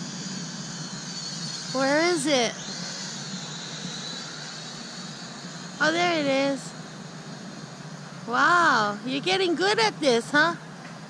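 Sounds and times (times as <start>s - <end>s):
drone propellers high whine: 0.0s - 11.0s.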